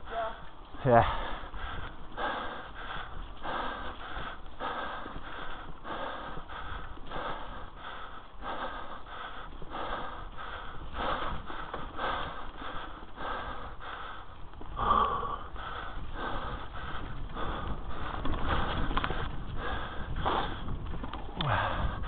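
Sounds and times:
fast heavy breathing: 0.0s - 22.0s
bike rolling on dirt: 0.1s - 22.0s.

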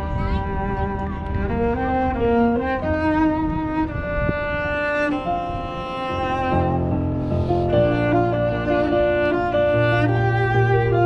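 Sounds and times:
bowed cello melody: 0.0s - 11.0s.

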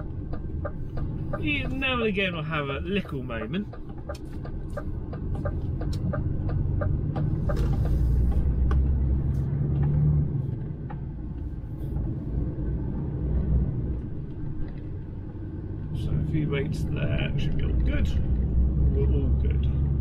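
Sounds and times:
diesel engine rumble in cab: 0.0s - 20.0s.

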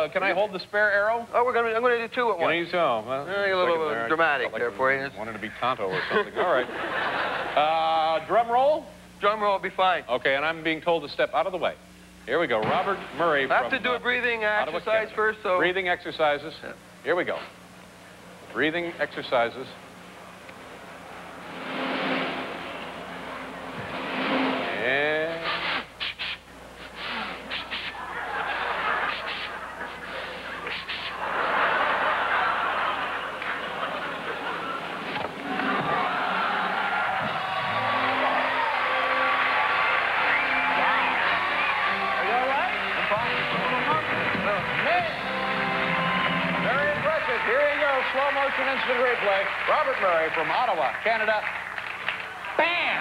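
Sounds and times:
band playing: 21.1s - 25.4s, 37.2s - 48.6s
man breathing vocalisations: 26.0s - 28.0s
audience cheering and applauding: 27.9s - 30.0s, 30.6s - 53.0s.

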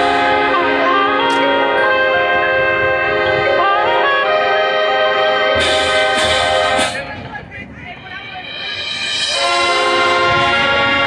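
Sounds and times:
marching band playing chords: 0.0s - 11.0s.

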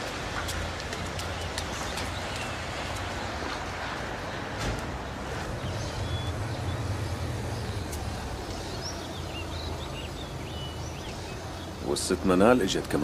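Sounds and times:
traffic rumble: 0.0s - 13.0s
high chirping calls: 5.0s - 12.8s.

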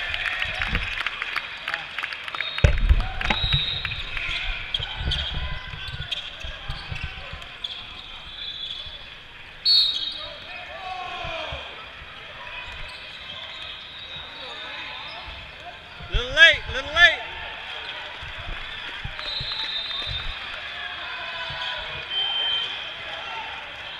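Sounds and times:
voices in echoing hall: 0.0s - 23.9s
sneakers squeaking on floor: 2.4s - 10.5s, 11.1s - 17.0s, 17.8s - 20.5s, 21.4s - 22.8s
basketball dribbling: 21.4s - 22.2s.

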